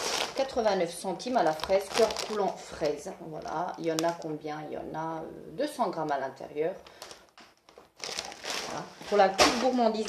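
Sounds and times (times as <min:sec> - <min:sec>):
plastic snack bag crinkling: 0:00.0 - 0:04.4, 0:06.8 - 0:10.0.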